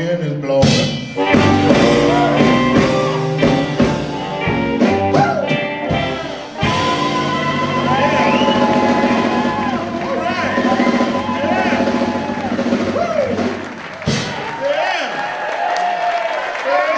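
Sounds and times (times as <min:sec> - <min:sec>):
electric blues band: 0:00.0 - 0:14.4
crowd cheering and shouting: 0:01.2 - 0:16.9.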